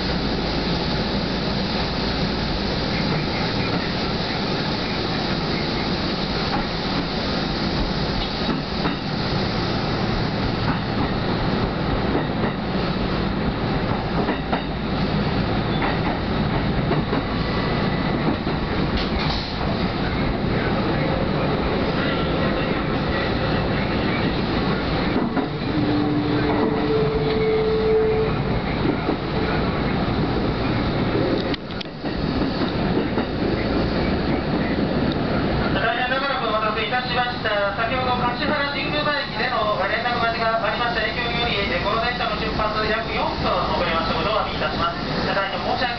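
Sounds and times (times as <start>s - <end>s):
train wheels rumbling on rails: 0.0s - 45.9s.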